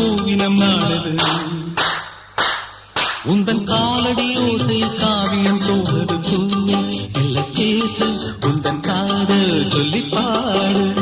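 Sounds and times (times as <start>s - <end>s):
clap-like percussion hits: 0.8s - 5.8s.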